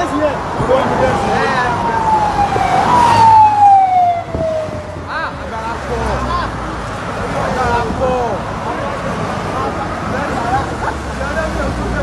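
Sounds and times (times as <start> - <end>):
passing vehicles: 0.0 - 12.0
siren wailing: 0.9 - 5.1.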